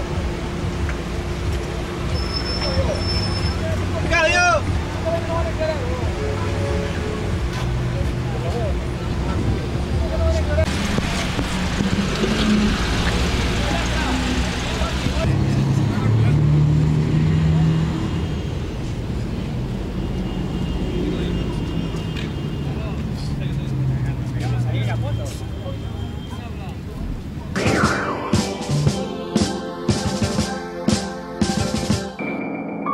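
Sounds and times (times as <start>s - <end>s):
crowd talking and calling out: 1.6s - 18.2s, 20.3s - 30.2s
car engine running: 7.4s - 16.1s.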